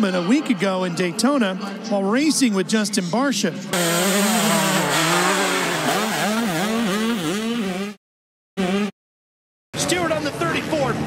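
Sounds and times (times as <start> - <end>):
motocross bike engine revving: 3.7 - 8.0, 8.6 - 9.0.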